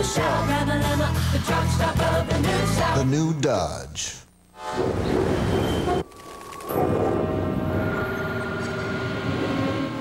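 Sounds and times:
steady drone tones: 0:04.5 - 0:10.0.

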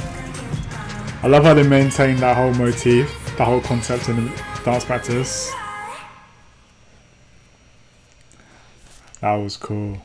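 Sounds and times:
song: 0:00.0 - 0:06.1.

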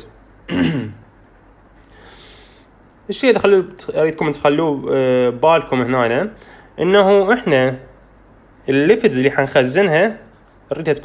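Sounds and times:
man clearing his throat: 0:00.5 - 0:01.1.

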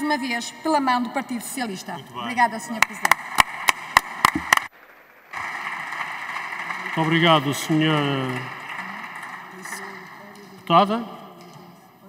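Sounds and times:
sharp hand claps close by: 0:02.8 - 0:04.7, 0:05.3 - 0:11.6
crowd applause: 0:03.0 - 0:11.0.

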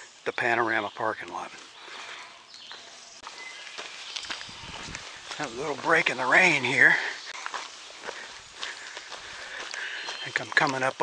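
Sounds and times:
footsteps on dirt trail: 0:00.9 - 0:11.0.

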